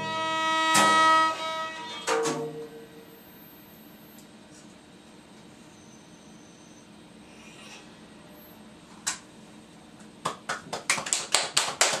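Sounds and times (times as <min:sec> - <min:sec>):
people clapping: 0:10.2 - 0:12.0.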